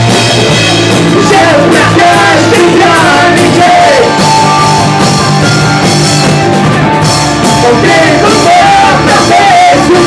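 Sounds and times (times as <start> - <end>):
rock band playing loudly: 0.0 - 10.0.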